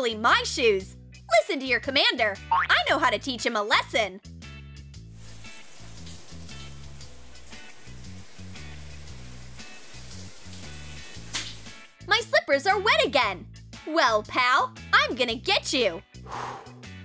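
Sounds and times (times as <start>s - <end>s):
background music with bass line: 4.2s - 12.2s
shower water spray hissing: 5.1s - 12.0s.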